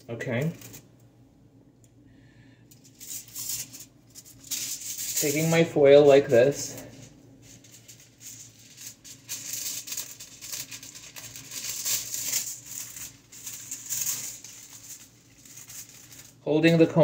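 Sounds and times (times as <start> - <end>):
foil crinkling: 0.3 - 0.9, 2.8 - 17.0.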